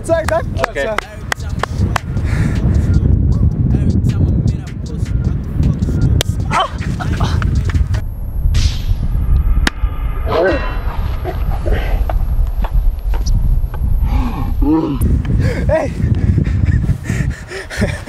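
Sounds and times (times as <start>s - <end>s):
steady low rumble: 0.0s - 18.0s
men crying out and laughing: 6.4s - 8.0s, 14.7s - 18.0s.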